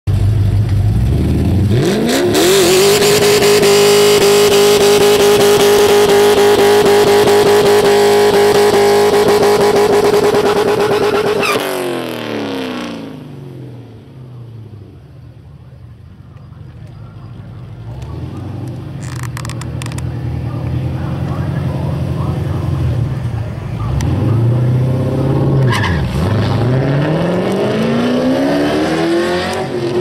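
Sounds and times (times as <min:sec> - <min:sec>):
car pulling away: 0:00.1 - 0:30.0
car engine revving high: 0:00.8 - 0:14.7, 0:17.7 - 0:30.0.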